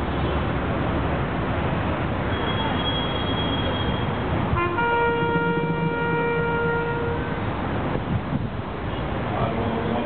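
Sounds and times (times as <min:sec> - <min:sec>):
city traffic: 0:00.0 - 0:10.0.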